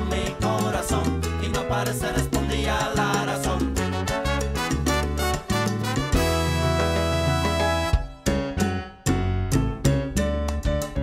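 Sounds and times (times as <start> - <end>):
instrumental salsa music: 0.0 - 11.0
moving bass line: 0.0 - 11.0.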